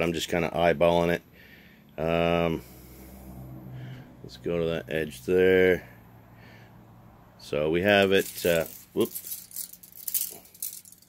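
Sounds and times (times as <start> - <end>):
tape measure rustling and jingling: 7.8 - 11.0.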